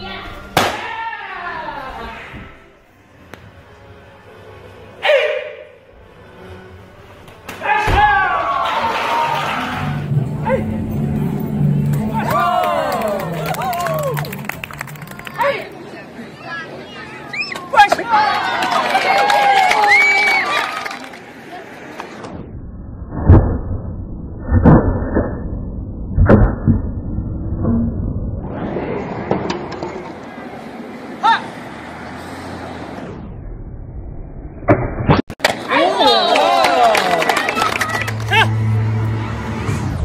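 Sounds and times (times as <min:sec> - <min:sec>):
crowd shouting and cheering: 0:00.6 - 0:02.5, 0:07.5 - 0:21.8, 0:35.4 - 0:40.0
martial-arts shout: 0:07.6 - 0:09.8.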